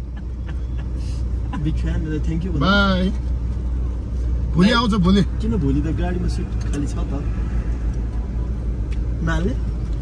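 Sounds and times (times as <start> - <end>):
low rumble inside car: 0.0 - 10.0.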